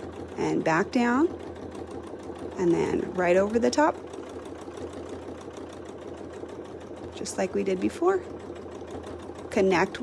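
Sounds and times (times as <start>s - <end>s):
sewing machine stitching: 0.0s - 10.0s.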